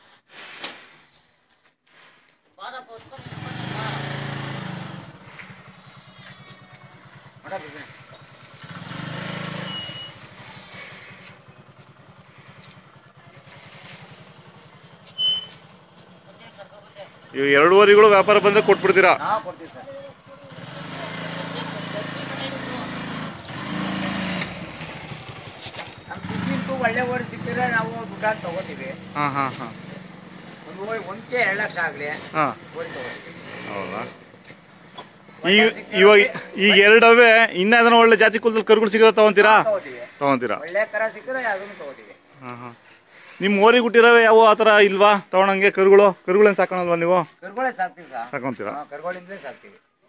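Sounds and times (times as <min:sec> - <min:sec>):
motorcycle engine idling: 0:02.9 - 0:37.8
motorcycle engine starting: 0:02.9 - 0:45.0
people talking: 0:16.3 - 0:22.9, 0:26.3 - 0:29.8, 0:35.4 - 0:42.7.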